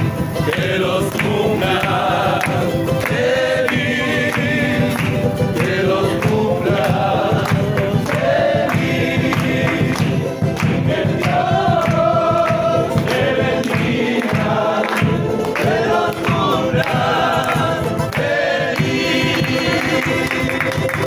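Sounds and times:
drum beat: 0.0 - 21.0
group singing in chorus: 0.0 - 21.0
hand clapping: 0.0 - 21.0
strummed guitars: 0.0 - 21.0.

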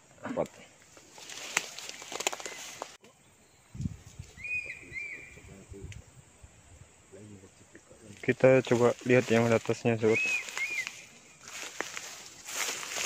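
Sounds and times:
rustling handling noise: 0.8 - 3.0, 8.1 - 13.0
bird chirping: 1.9 - 5.7, 10.0 - 11.6.

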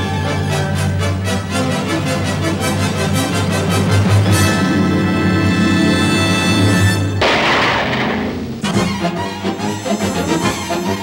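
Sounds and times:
orchestral music: 0.0 - 11.0
loud crash: 7.2 - 9.1.

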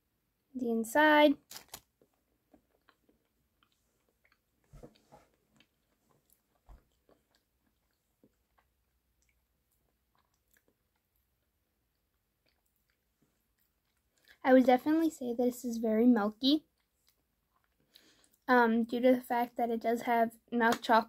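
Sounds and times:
soft mouth smacks chewing: 2.5 - 14.4, 16.8 - 18.4.

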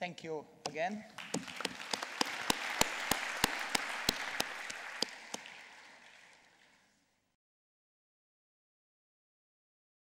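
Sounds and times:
sharp single claps: 0.7 - 6.2
audience applauding: 1.1 - 6.9.

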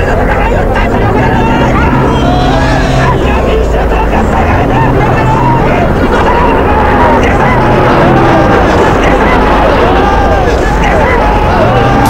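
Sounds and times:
crowd shouting: 0.0 - 12.0
steady low hum: 0.0 - 12.0.

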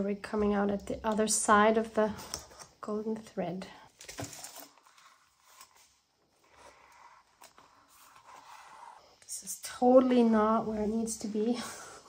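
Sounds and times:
paper rustling: 4.0 - 8.6.

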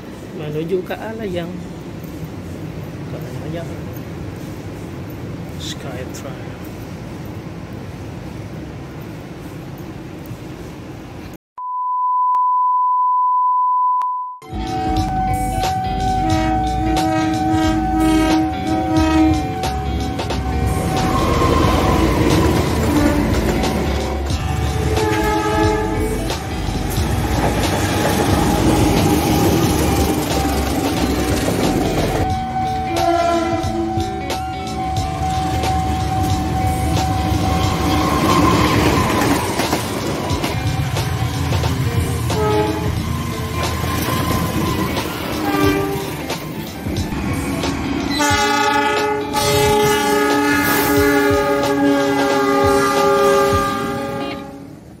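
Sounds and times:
train rumbling on rails: 0.0 - 11.4, 14.4 - 55.0
train horn blasts: 14.4 - 26.4, 32.2 - 39.1, 42.2 - 43.7, 44.4 - 46.2, 48.1 - 54.9.

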